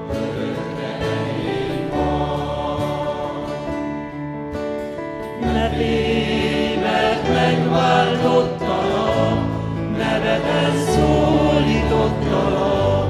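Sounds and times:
acoustic guitar: 0.0 - 13.0
group singing a hymn: 0.0 - 13.0.

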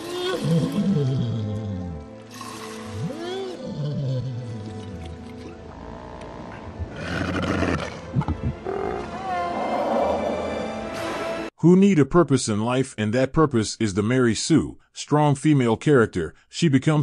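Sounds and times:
creature low moaning calls: 0.0 - 2.1, 3.0 - 4.6, 5.7 - 10.5.

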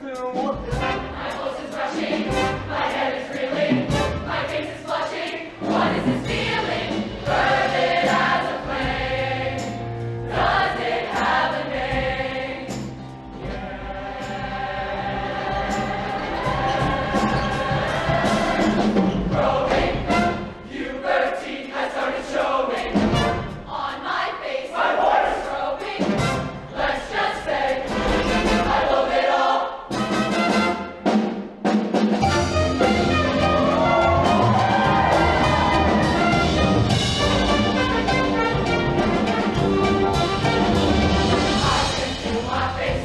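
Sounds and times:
accompaniment with steady beat: 0.0 - 43.0
choir singing in harmony: 0.6 - 31.1, 32.2 - 43.0.

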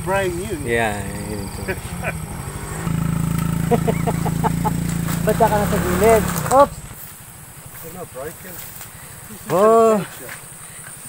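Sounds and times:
motorbike engine running: 0.0 - 11.0
scooter engine idling: 0.0 - 11.0.

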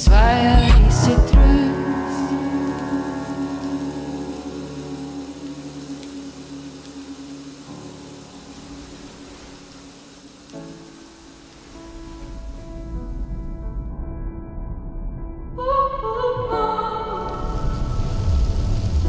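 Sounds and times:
rain hissing: 0.0 - 13.7, 16.3 - 19.0
ambient music long held tones: 0.0 - 19.0.

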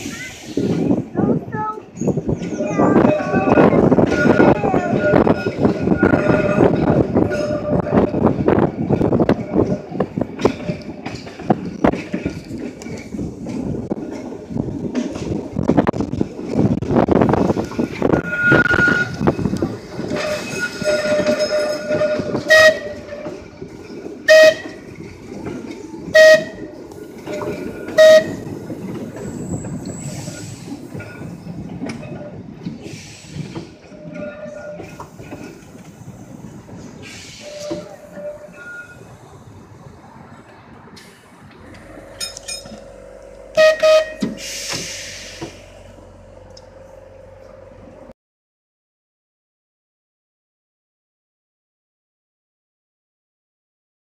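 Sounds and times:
tram rumbling on rails: 0.0 - 48.2
tram horn blasts: 2.5 - 10.9, 17.7 - 29.4, 37.3 - 39.2, 41.6 - 48.1.

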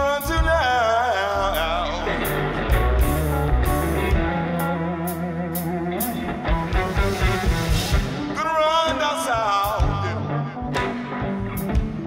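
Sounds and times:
bass line: 0.0 - 12.0
electric guitar: 0.0 - 12.0
live band playing: 0.0 - 12.0
drum and cymbal hits: 2.2 - 8.5.

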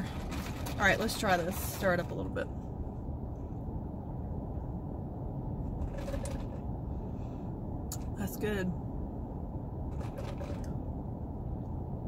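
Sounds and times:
low rumble inside car cabin: 0.0 - 12.0.

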